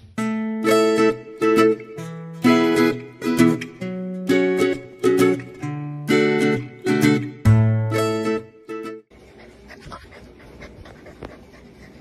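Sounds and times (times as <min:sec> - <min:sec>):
puppy panting: 0:09.1 - 0:12.0.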